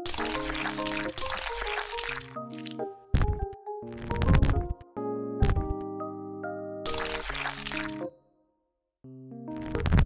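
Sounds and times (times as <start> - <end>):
wet liquid popping effect: 0.0 - 3.5, 6.9 - 8.0
background music: 0.0 - 10.0.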